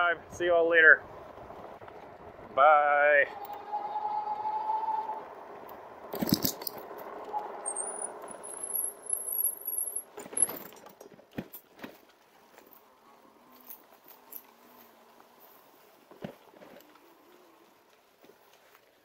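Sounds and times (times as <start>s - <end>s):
bike rattling and clunking: 5.6s - 12.8s
thin high squeal: 7.4s - 10.0s.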